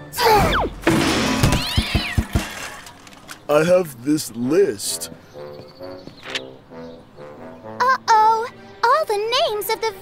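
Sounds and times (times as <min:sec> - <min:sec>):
background music: 0:00.0 - 0:02.1, 0:03.8 - 0:10.0
quick cartoon knocks: 0:00.9 - 0:02.6.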